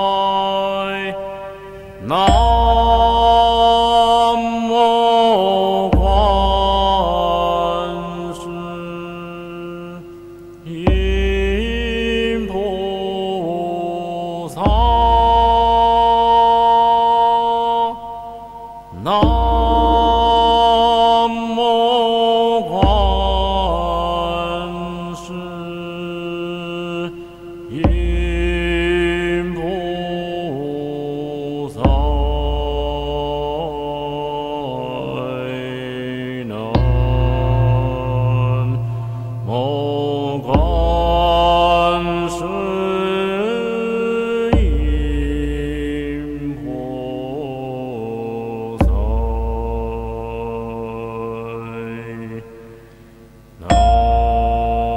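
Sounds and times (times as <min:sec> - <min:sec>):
sung chant with music: 0:00.0 - 0:54.9.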